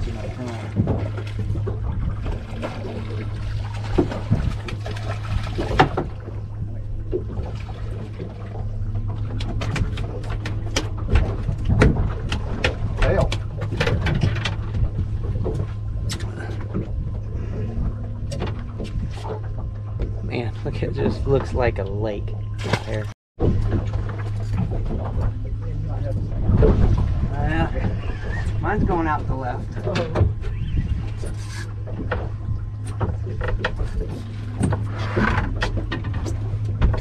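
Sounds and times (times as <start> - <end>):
steady low hum: 0.0 - 37.0
water against hull: 0.0 - 37.0
sharp knocks and clicks: 9.0 - 16.9.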